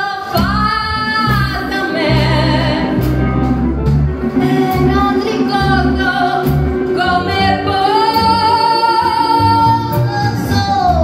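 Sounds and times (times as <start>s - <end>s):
rockabilly band playing: 0.0s - 11.0s
woman singing lead: 0.0s - 11.0s.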